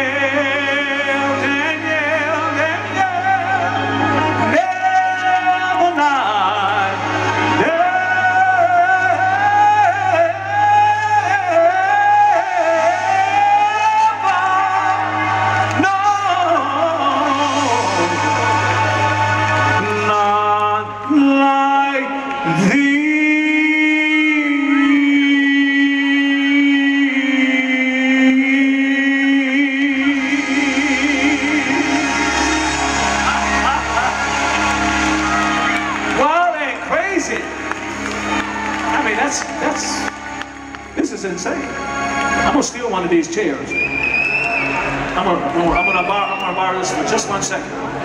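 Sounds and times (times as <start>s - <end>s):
audience whooping and cheering: 0.0s - 25.5s, 30.0s - 42.8s, 43.4s - 48.0s
person singing long high notes: 0.0s - 36.6s
band playing soul ballad: 0.0s - 43.4s
live band sustained chord: 28.3s - 48.0s.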